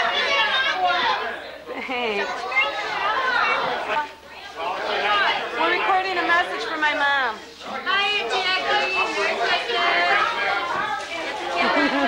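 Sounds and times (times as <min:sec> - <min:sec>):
overlapping indistinct chatter: 0:00.0 - 0:12.0.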